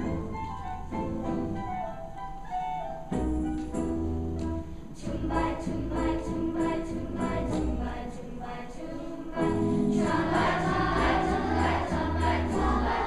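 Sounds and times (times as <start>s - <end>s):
musical accompaniment: 0.0s - 13.0s
children's choir singing: 4.9s - 13.0s.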